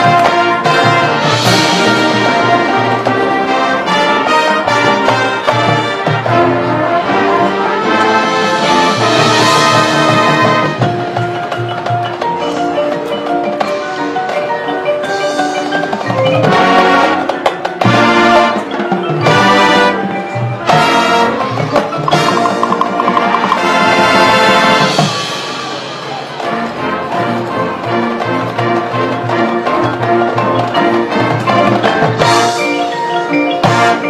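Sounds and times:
marching band playing: 0.0 - 34.0.

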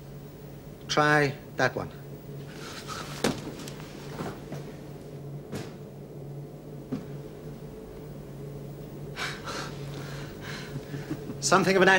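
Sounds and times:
low electronic hum: 0.0 - 11.9.

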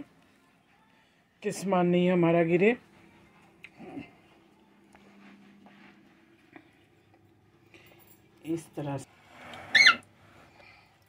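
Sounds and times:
soft rustling: 4.2 - 7.0
short high-pitched squeak: 9.7 - 10.0.

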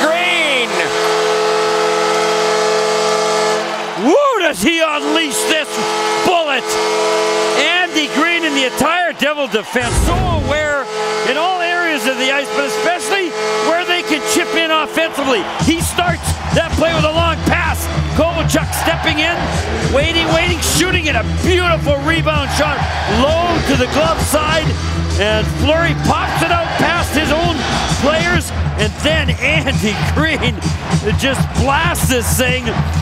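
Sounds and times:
crowd cheering: 0.0 - 33.0
goal horn blaring: 12.4 - 15.3
commentator speaking: 25.2 - 32.8.

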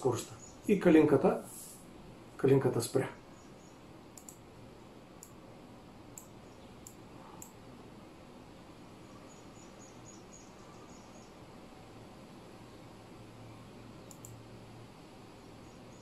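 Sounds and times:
faint steady hiss: 0.0 - 16.0
computer mouse clicking: 4.1 - 4.4, 5.2 - 5.4, 6.1 - 7.6, 14.0 - 14.4.

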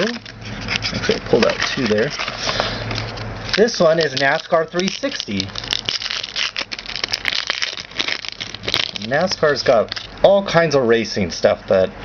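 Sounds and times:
plastic wrapper crinkling: 0.0 - 10.2.

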